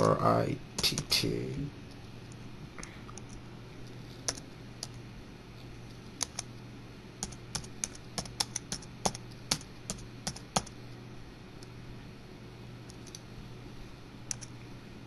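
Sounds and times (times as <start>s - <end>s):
steady low hum: 0.0s - 15.0s
keyboard keystrokes clicking: 6.2s - 6.5s, 7.2s - 10.7s, 14.3s - 14.5s.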